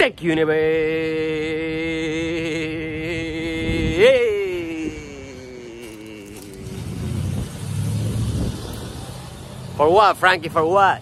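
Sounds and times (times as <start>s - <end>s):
car passing: 1.1s - 11.0s.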